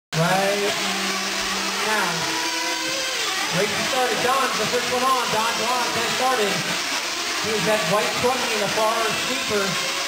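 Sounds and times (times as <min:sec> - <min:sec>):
nitro engines buzzing: 0:00.1 - 0:10.0.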